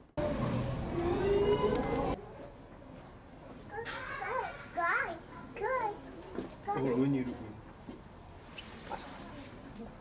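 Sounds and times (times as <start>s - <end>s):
child's high voice: 3.7s - 6.1s.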